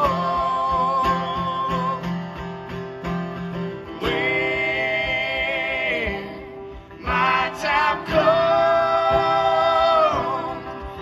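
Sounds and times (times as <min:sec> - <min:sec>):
acoustic guitar strumming: 0:00.0 - 0:11.0
voices singing long notes: 0:04.0 - 0:11.0.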